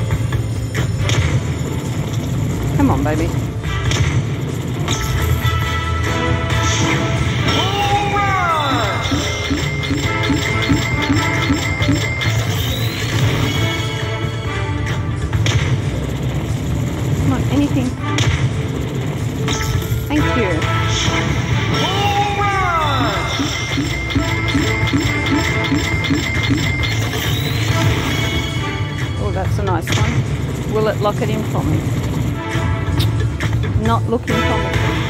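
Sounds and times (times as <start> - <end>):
slot machine music and effects: 0.0 - 35.0.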